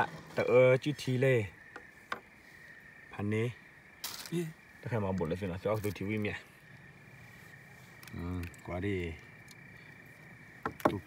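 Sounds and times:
sharp knocks: 0:10.6 - 0:11.0.

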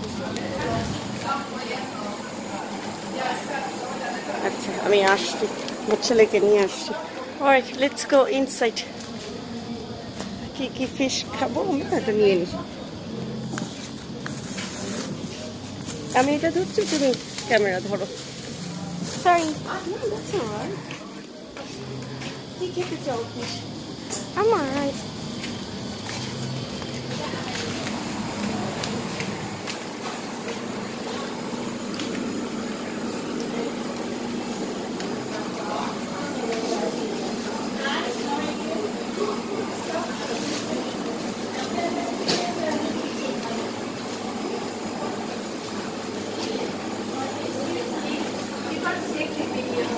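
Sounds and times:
indistinct chatter of many people: 0:00.0 - 0:49.9.

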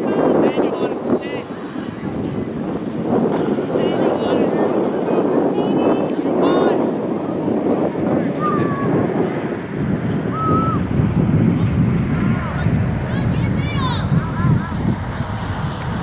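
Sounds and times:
wind on microphone: 0:00.0 - 0:16.0.

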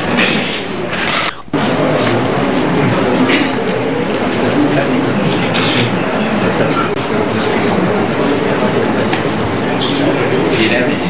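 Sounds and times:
room rumble and hiss: 0:00.0 - 0:11.0.

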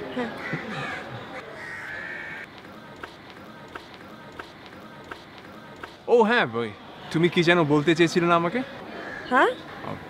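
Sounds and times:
crow cawing: 0:00.4 - 0:02.5.

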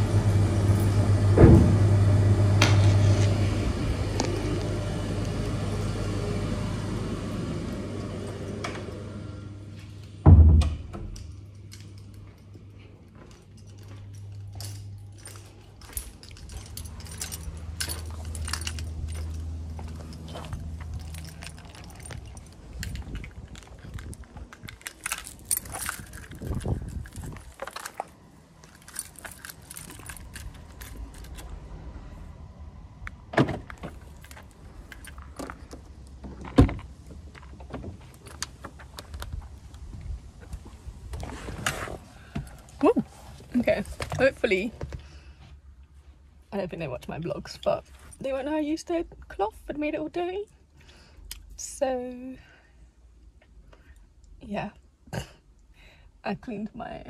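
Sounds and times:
metallic jangling and clicking: 0:11.2 - 0:31.5, 0:34.0 - 0:35.8.

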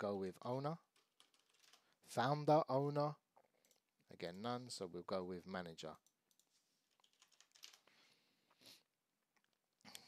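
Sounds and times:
typing on keyboard: 0:00.9 - 0:01.9, 0:06.0 - 0:07.8.

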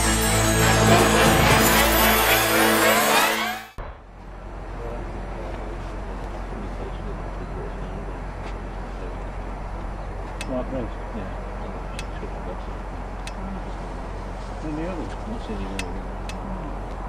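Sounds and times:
electronic music: 0:00.0 - 0:03.8.

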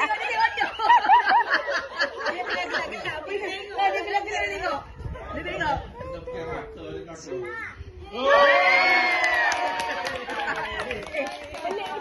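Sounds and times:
people talking over one another: 0:00.0 - 0:08.6.

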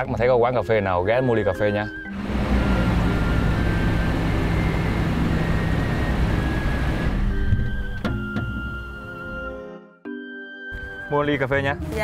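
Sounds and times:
background music: 0:00.0 - 0:12.0
vehicle engine and tyre noise: 0:02.2 - 0:07.6.

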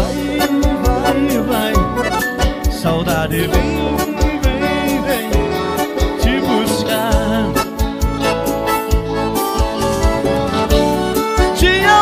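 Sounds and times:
accordion melody: 0:00.0 - 0:12.0
steady drum beat: 0:00.0 - 0:12.0.

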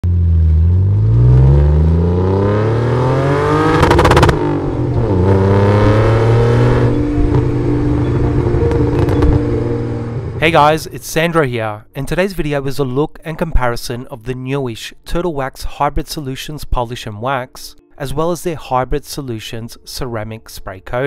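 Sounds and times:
car engine revving: 0:00.0 - 0:10.4
engine crackle: 0:00.0 - 0:10.4.

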